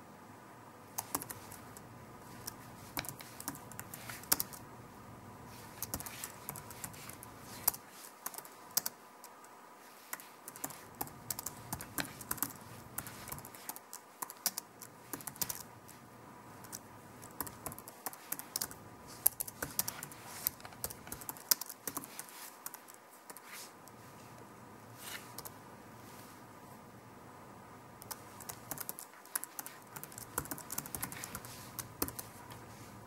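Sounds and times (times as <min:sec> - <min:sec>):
typing on keyboard: 0:01.0 - 0:04.6, 0:05.7 - 0:09.5, 0:10.1 - 0:15.7, 0:16.6 - 0:23.4, 0:28.0 - 0:32.4.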